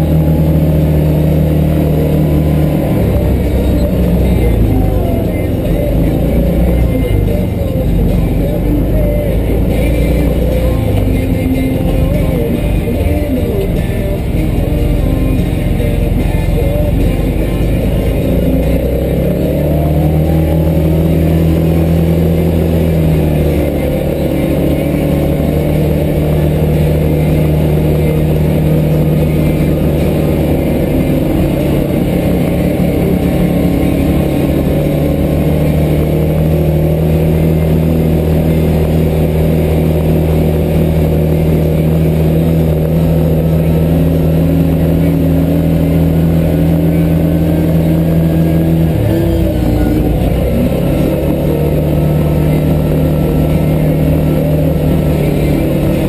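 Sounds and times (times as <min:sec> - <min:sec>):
vehicle engine droning: 0:00.0 - 0:56.0.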